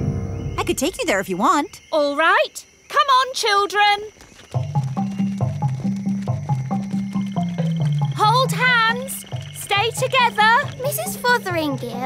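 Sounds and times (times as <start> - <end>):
cartoon walking music: 4.4 - 12.0.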